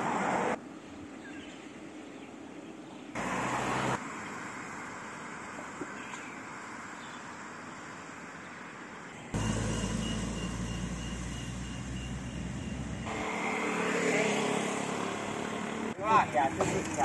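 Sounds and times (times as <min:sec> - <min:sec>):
vehicle engine running: 0:04.0 - 0:13.4.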